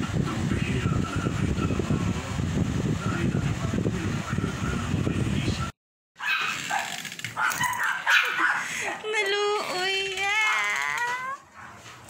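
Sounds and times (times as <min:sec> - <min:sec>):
small dog barking and whining: 0:06.2 - 0:08.6.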